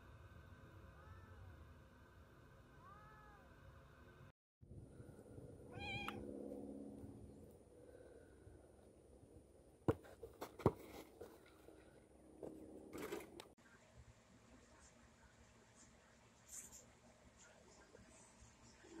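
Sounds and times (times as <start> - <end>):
cat meowing: 5.7 - 6.2.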